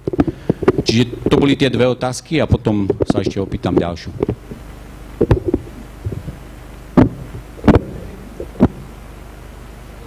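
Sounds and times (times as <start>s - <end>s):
microphone rubbing: 0.0s - 1.8s, 2.4s - 9.0s
microphone handling thumps: 0.0s - 9.0s.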